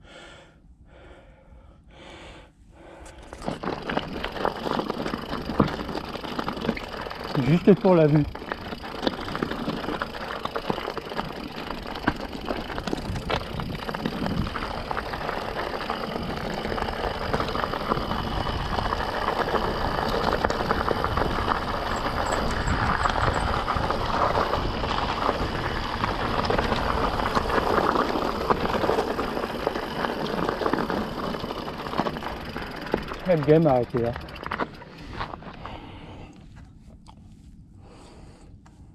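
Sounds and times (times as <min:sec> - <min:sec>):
bike rattling: 0:03.0 - 0:36.2
tyres crunching on stones: 0:03.4 - 0:35.8
steady rush of noise: 0:03.5 - 0:33.4.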